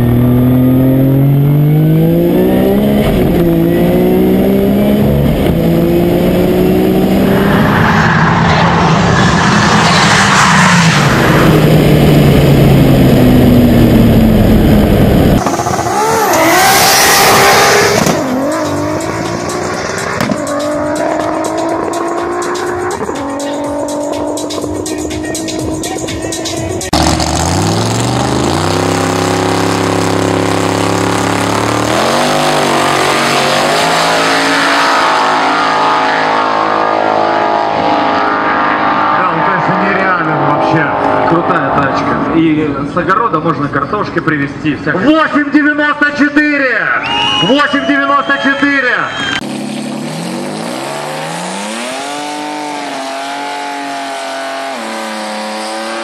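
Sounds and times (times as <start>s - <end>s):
high-revving car engine in cabin: 0.0s - 7.8s, 10.8s - 24.7s, 26.9s - 42.1s, 49.2s - 56.0s
car accelerating through gears: 0.0s - 43.0s, 49.1s - 56.0s
drag-race cars launching: 0.0s - 56.0s.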